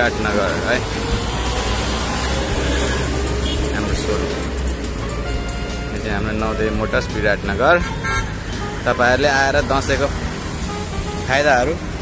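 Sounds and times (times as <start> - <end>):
music: 0.0 - 12.0
street traffic rumbling: 0.0 - 12.0.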